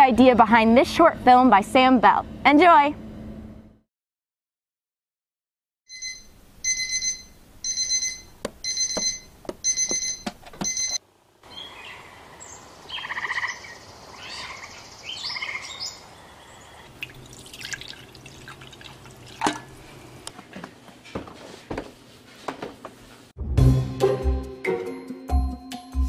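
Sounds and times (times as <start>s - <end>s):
alarm clock beeping: 5.9s - 11.0s.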